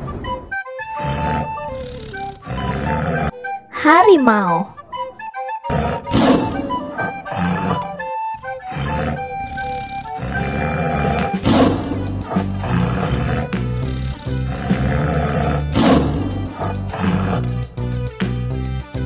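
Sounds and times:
background music: 0.0s - 19.0s
tiger roaring: 1.0s - 3.4s, 5.6s - 17.9s.

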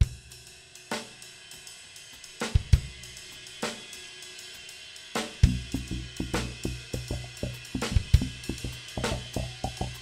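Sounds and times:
instrumental rock band playing: 5.5s - 10.0s.

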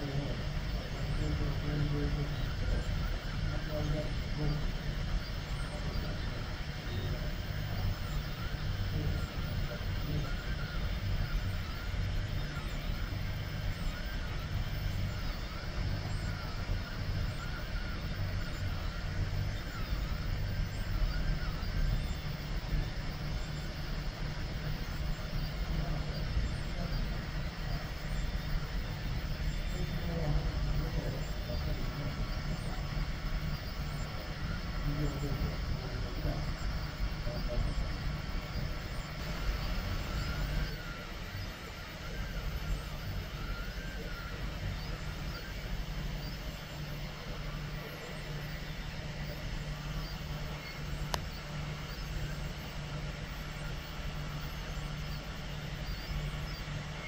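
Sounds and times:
blower fan hum: 0.0s - 57.0s
stepper motors buzzing and whining: 0.0s - 57.0s.

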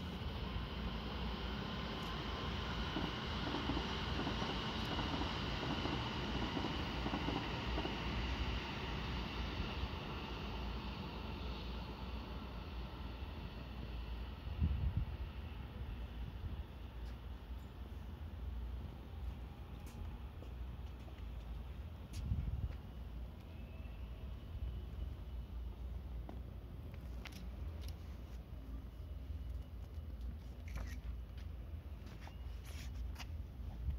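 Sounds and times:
distant city and rail traffic hum: 0.0s - 33.9s
wind buffeting microphone: 14.5s - 16.7s, 22.1s - 22.8s.

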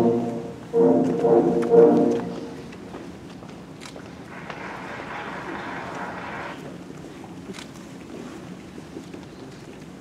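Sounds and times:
crowd murmur and shuffling: 0.0s - 10.0s
faint footsteps: 0.0s - 10.0s.

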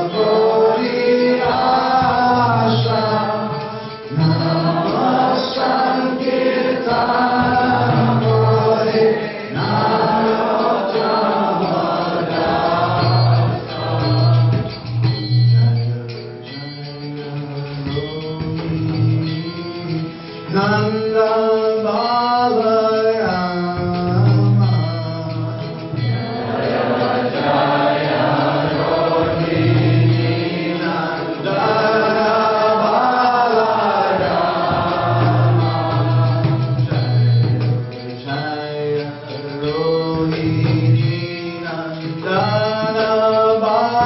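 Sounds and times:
voices singing along: 0.0s - 23.2s, 24.1s - 44.0s
man singing into a microphone: 0.0s - 26.4s, 28.6s - 44.0s
musical accompaniment: 0.0s - 44.0s.

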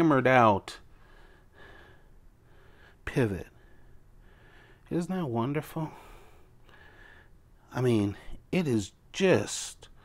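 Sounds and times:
faint breath: 0.9s - 3.0s, 3.6s - 4.9s, 5.9s - 7.4s.

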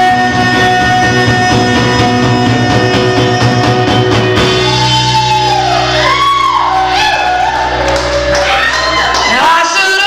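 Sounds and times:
low accompaniment: 0.0s - 9.8s
electric guitar: 0.0s - 10.0s.

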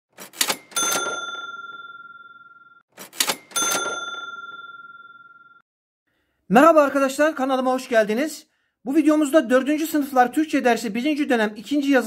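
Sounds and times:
bright bell ding: 0.7s - 2.7s, 3.4s - 5.6s.

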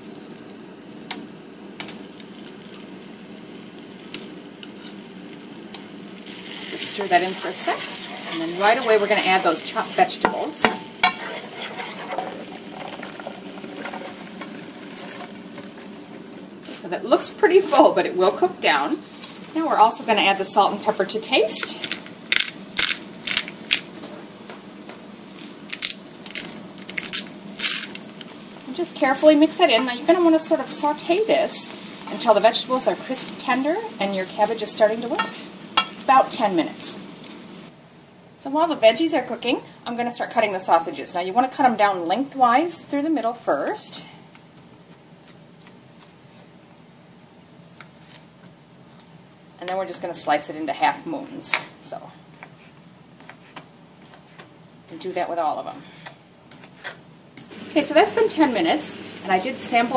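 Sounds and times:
oil sizzling in a skillet: 0.0s - 37.7s, 57.5s - 59.9s
pepper mill grinding: 21.6s - 24.2s, 25.4s - 28.0s.

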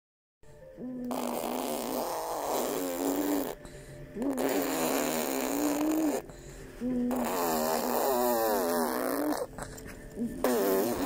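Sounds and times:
baby blowing buzzing lip trill: 0.8s - 11.0s.

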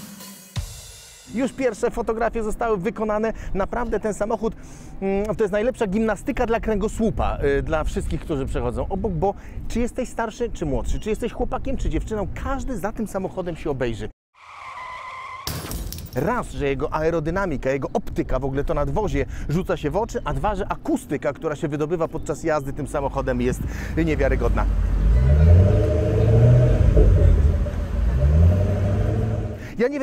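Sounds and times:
car engine rumbling: 22.8s - 29.7s
tyres squealing: 24.0s - 29.6s
sudden rush of noise: 24.9s - 29.7s.

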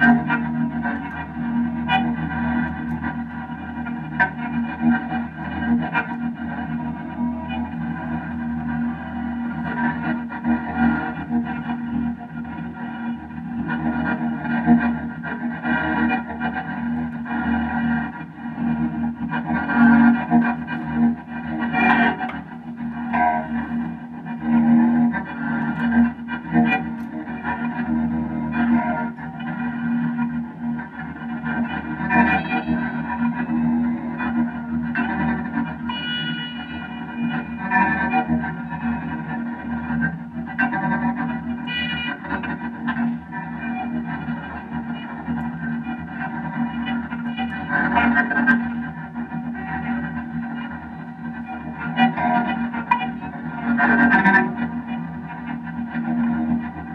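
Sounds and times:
distorted electric guitar drone: 0.0s - 56.9s.

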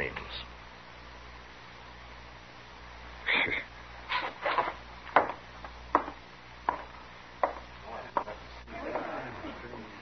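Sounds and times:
boot heels on wooden floor: 4.4s - 8.4s.

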